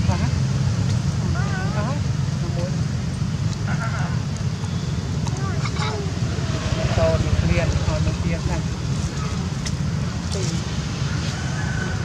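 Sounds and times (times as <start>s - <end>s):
steady low rumble: 0.0s - 11.1s.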